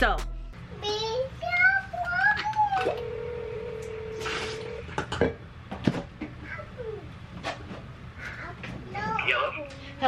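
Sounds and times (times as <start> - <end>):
phone ringback tone: 2.9 - 4.9.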